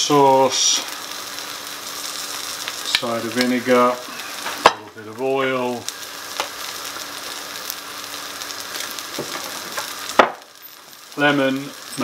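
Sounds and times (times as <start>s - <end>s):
patties sizzling in oil: 0.0s - 12.0s.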